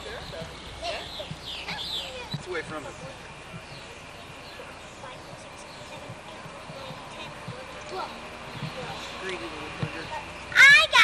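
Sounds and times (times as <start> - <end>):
small children talking: 0.7 - 9.2, 9.9 - 11.0.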